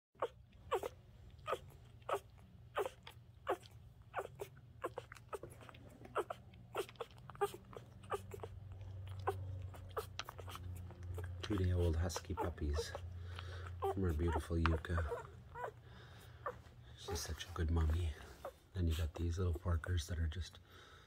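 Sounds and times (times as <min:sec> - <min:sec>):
low steady hum: 0:00.2 - 0:21.0
puppies nursing soft sounds: 0:00.2 - 0:21.0.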